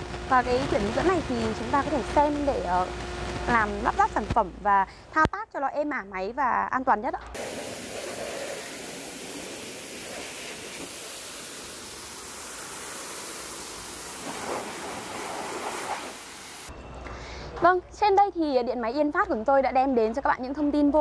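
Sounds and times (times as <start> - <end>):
pressure washer jet hissing: 7.4 - 16.7.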